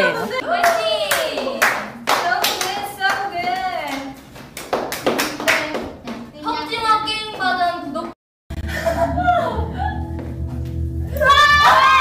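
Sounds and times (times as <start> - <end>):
people clapping: 0.5 - 6.2.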